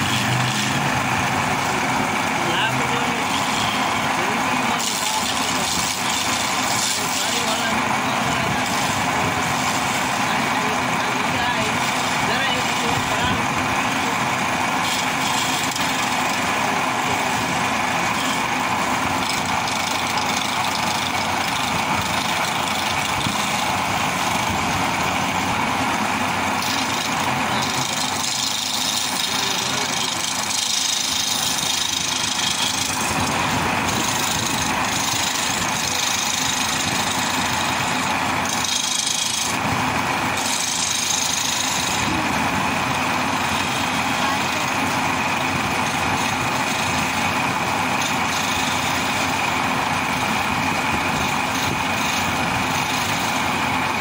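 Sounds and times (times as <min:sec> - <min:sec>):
chisel scraping spinning wood: 0:00.0 - 0:54.0
lathe motor running: 0:00.0 - 0:54.0.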